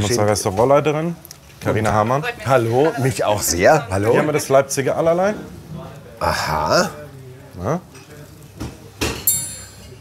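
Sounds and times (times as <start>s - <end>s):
crockery clinking on a table: 8.0s - 10.0s.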